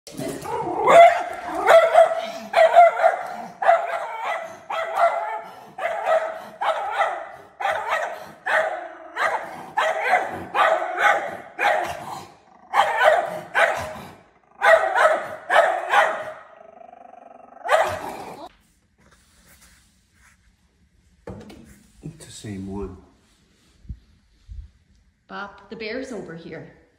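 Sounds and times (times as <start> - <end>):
dog barking: 0.5 - 16.6, 17.6 - 18.3.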